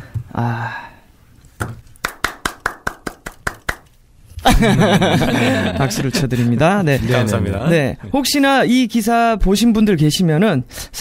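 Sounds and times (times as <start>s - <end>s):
person clapping hands: 2.0s - 3.9s.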